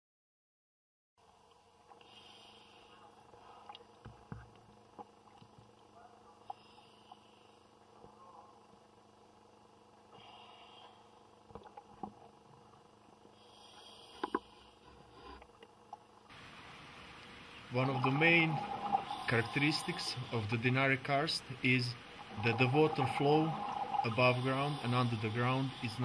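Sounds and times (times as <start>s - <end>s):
diving gear clicks and knocks: 3.7s - 5.8s
diver breathing through regulator: 13.3s - 15.4s, 18.2s - 20.6s, 22.3s - 26.0s
bubbling exhalation: 17.8s - 20.6s.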